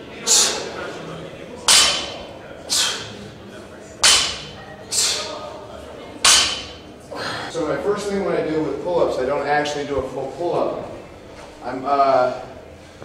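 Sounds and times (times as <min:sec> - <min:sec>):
barbell plates clanking: 0:04.0 - 0:04.5, 0:06.2 - 0:06.9.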